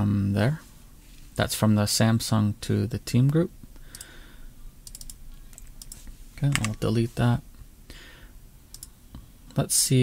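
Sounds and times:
faint room noise: 0.0 - 10.0
computer mouse clicks: 4.8 - 6.8, 8.7 - 8.9.

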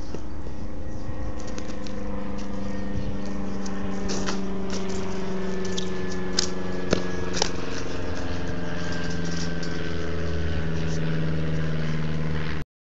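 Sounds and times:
mechanical hum: 0.0 - 12.6.

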